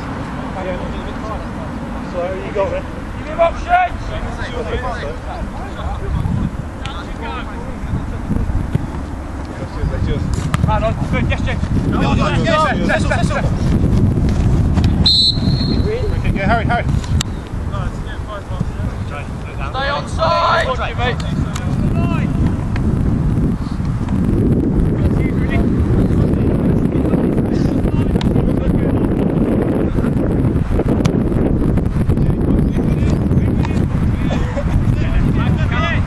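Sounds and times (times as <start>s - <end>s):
wind rumble on microphone: 0.0s - 36.0s
referee's whistle blast: 15.0s - 15.9s.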